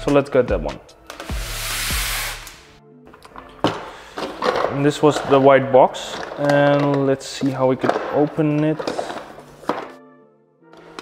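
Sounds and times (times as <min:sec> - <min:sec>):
soft background music: 0:00.0 - 0:11.0
packaging rustling: 0:03.2 - 0:10.0.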